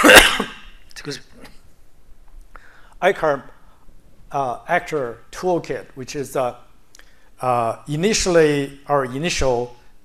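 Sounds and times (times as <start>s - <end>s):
man coughing: 0.0s - 0.6s.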